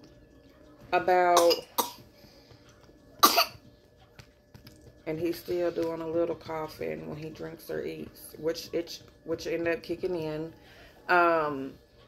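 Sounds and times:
baby coughing: 0:01.3 - 0:02.0, 0:03.2 - 0:03.6.

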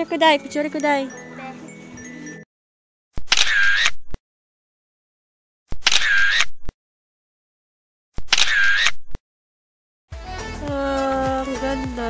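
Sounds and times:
camera shutter: 0:03.2 - 0:04.1, 0:05.7 - 0:06.6, 0:08.2 - 0:09.0.

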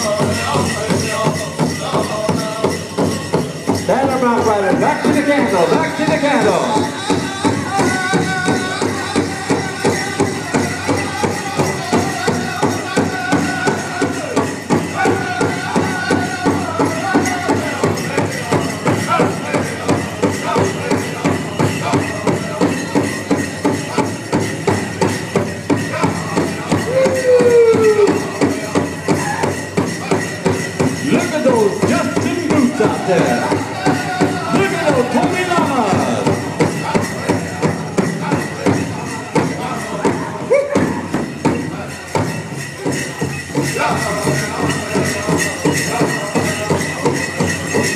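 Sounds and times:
drum group singing: 0:00.0 - 0:47.9
steady drum beat: 0:00.0 - 0:47.9.

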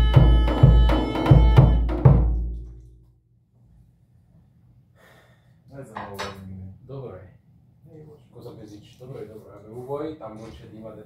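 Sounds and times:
man speaking: 0:08.0 - 0:11.0.

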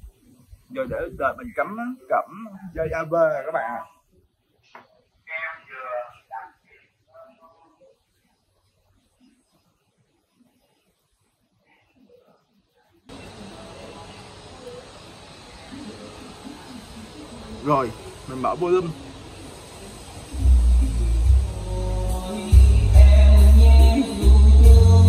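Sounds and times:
stereo hiss with low hum: 0:00.0 - 0:25.0.

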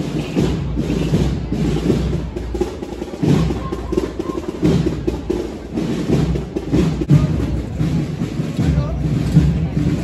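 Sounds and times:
procession band drums: 0:00.0 - 0:10.0.

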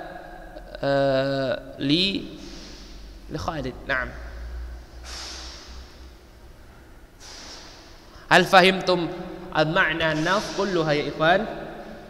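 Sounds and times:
man breathing: 0:02.4 - 0:03.2, 0:04.5 - 0:06.1, 0:07.2 - 0:08.3.

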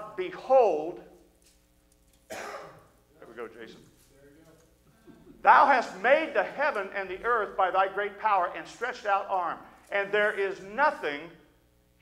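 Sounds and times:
man clearing throat cough: 0:02.3 - 0:03.0.

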